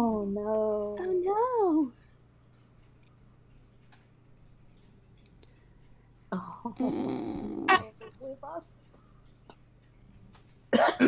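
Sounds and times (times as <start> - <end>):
person coughing: 10.7 - 11.0.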